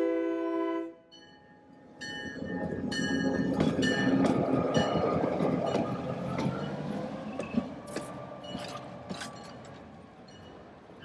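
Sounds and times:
locomotive air horn: 0:00.0 - 0:01.1
locomotive engine and wheels: 0:01.2 - 0:11.0.

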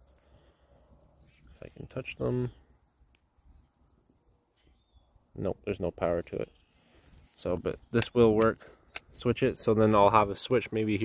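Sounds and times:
faint bird chirps: 0:00.2 - 0:05.4, 0:06.3 - 0:07.0.

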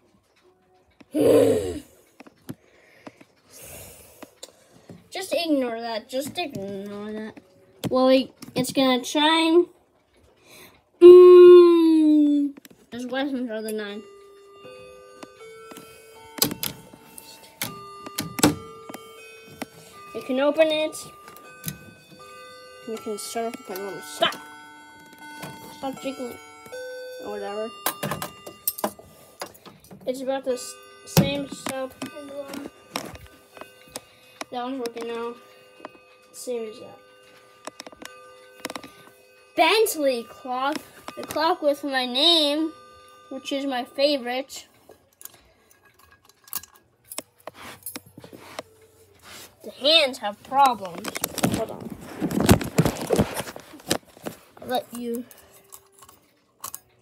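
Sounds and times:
faint ringing tone: 0:13.5 - 0:45.7
metal chains and weights clinking: 0:49.8 - 0:57.0.

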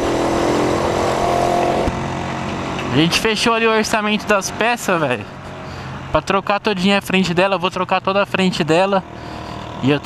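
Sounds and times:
heavy trucks: 0:00.0 - 0:06.9, 0:09.0 - 0:10.0
motorcycle engine cruising: 0:00.0 - 0:10.0
wind and road noise: 0:00.0 - 0:10.0.

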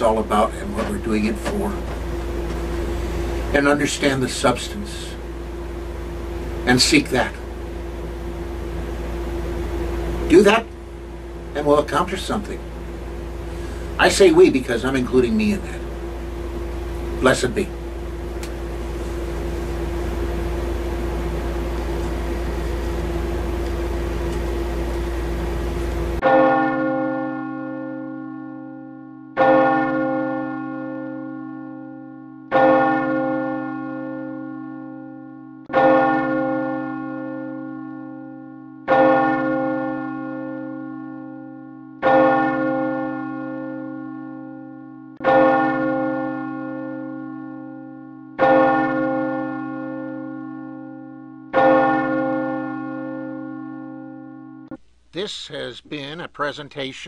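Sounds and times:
large bell tolling: 0:00.0 - 0:54.8
room hum: 0:00.0 - 0:57.0.

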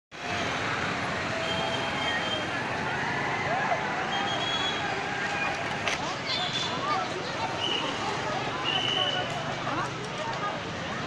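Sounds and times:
motorbike traffic: 0:00.1 - 0:11.0
crowd voices: 0:00.2 - 0:11.0.

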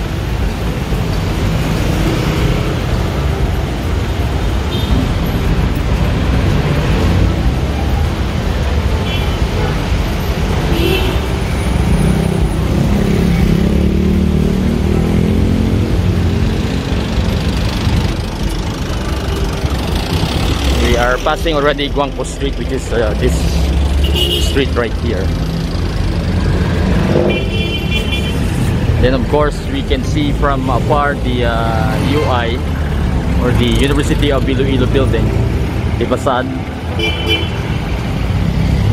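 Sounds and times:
cars running: 0:00.0 - 0:38.9
motorcycles passing: 0:00.0 - 0:38.9
motorized tricycles: 0:00.0 - 0:38.9
vehicle engine hum: 0:00.0 - 0:38.9.

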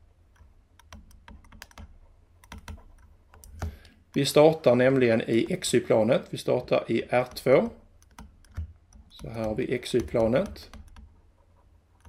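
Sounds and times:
stylus tapping on tablet: 0:00.4 - 0:11.2.

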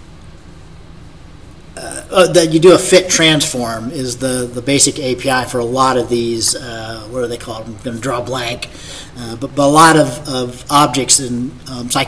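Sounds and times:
low electrical hum: 0:00.0 - 0:12.0
man speaking: 0:01.8 - 0:12.0.

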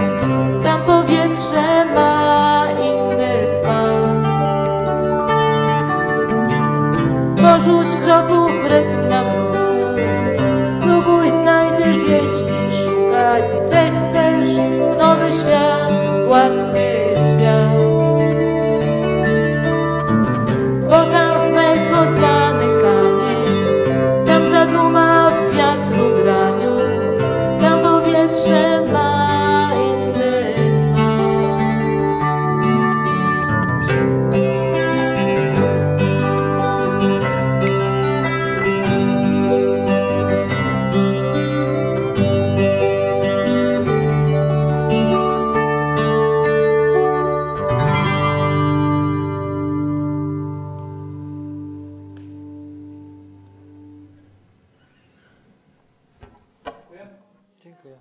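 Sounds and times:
keyboard piano: 0:00.0 - 0:54.0
bass guitar: 0:00.0 - 0:54.2
acoustic guitar strumming: 0:00.0 - 0:57.5.

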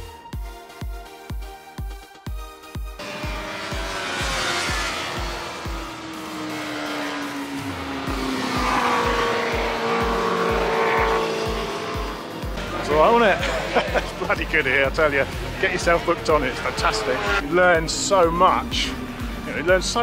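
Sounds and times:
background music with steady beat: 0:00.0 - 0:20.0
motorcycles passing by: 0:03.0 - 0:18.1.

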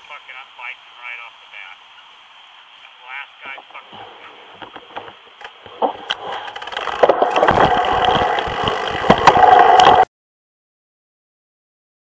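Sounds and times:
wind buffeting on camera: 0:03.8 - 0:10.1
bike tyre and drivetrain rattle: 0:04.0 - 0:10.1.

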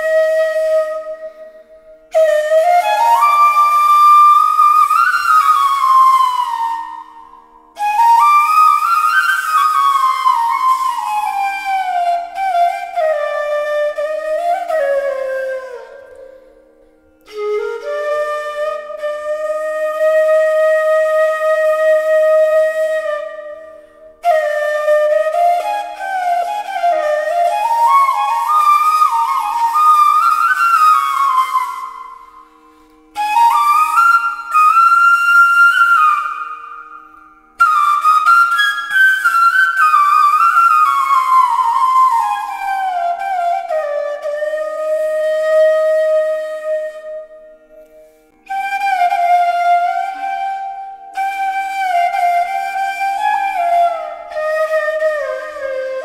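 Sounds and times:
bamboo flute melody: 0:00.0 - 0:56.0
flute player breathing: 0:01.1 - 0:02.2, 0:15.8 - 0:17.4, 0:23.6 - 0:24.2, 0:31.7 - 0:33.7, 0:47.4 - 0:48.7.

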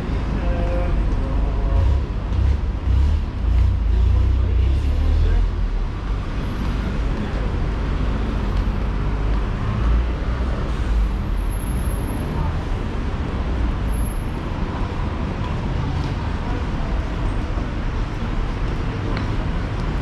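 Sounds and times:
passersby chatter: 0:00.0 - 0:02.4, 0:03.4 - 0:20.0
road traffic rumble: 0:00.0 - 0:20.0.

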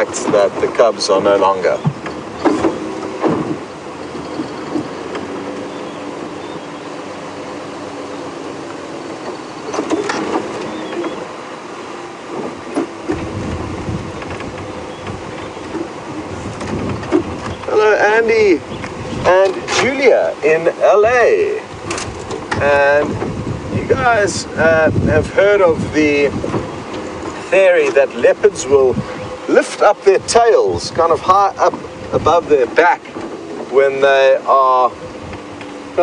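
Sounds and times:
road and body noise: 0:00.0 - 0:36.0
vehicle engine hum: 0:00.0 - 0:36.0.

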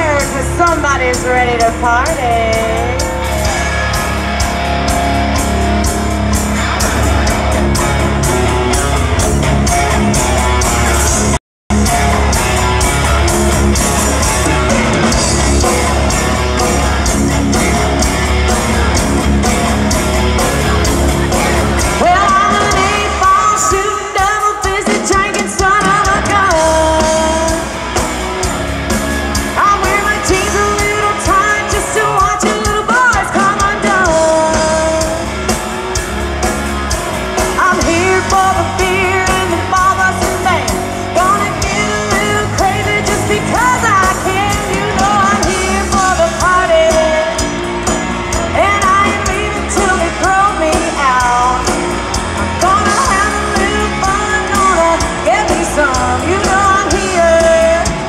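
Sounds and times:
female lead vocal: 0:00.0 - 0:03.4, 0:20.3 - 0:27.8, 0:29.3 - 0:35.4, 0:37.4 - 0:47.6, 0:48.3 - 0:51.8, 0:52.4 - 0:58.0
bass guitar: 0:00.0 - 0:58.0
drums: 0:00.0 - 0:58.0
electric guitar: 0:00.0 - 0:58.0.

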